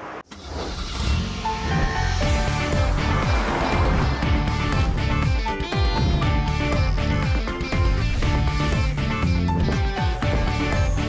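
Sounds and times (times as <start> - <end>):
melodic theme music: 1.6 - 11.0.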